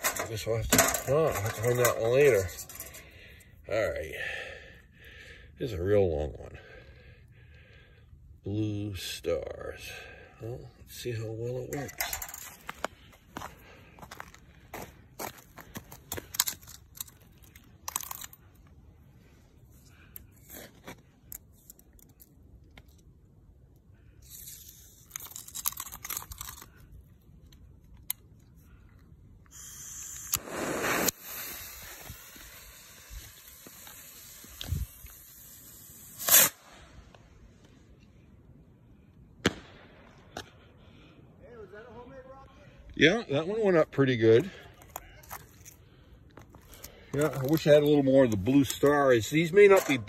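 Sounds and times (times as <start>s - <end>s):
crunching and handling clicks: 15.3s - 18.8s, 19.9s - 29.5s, 44.7s - 50.0s
rocket fuse hissing: 29.5s - 37.1s
rocket bursting bang: 39.4s - 40.0s.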